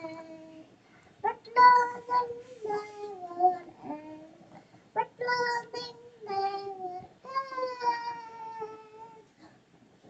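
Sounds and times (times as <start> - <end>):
girl singing unaccompanied: 0.0 - 9.3.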